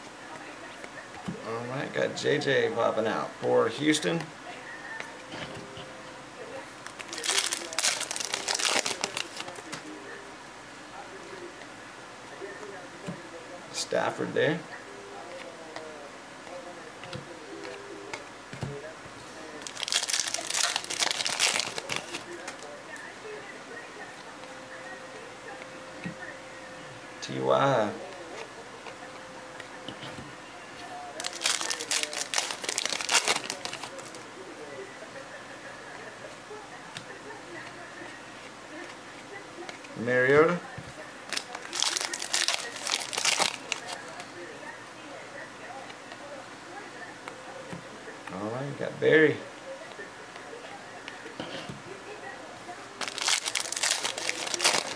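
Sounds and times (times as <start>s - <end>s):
foil wrapper tearing and crackling: 6.8s - 9.7s, 19.6s - 22.6s, 31.2s - 34.2s, 41.3s - 44.0s, 53.0s - 54.9s.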